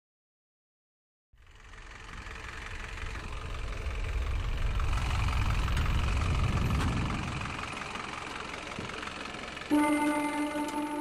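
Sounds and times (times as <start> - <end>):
car engine driving past: 1.4 - 11.0.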